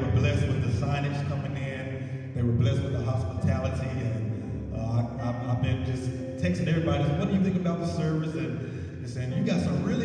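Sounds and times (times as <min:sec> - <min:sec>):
sustained keyboard chords: 0:00.0 - 0:10.0.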